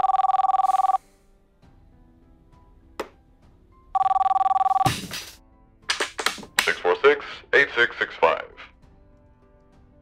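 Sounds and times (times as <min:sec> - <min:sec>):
mobile phone ringing: 0:00.0 - 0:01.0, 0:04.0 - 0:04.9.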